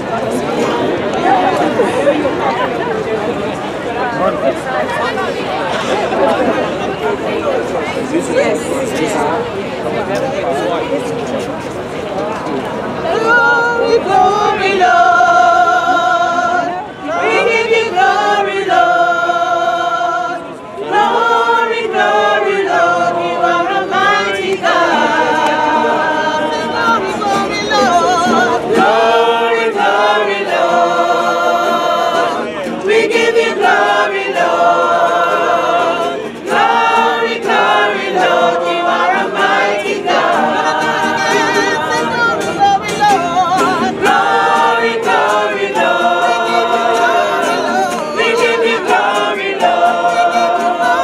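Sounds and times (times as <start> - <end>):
choir singing a carol: 13.0 - 51.0.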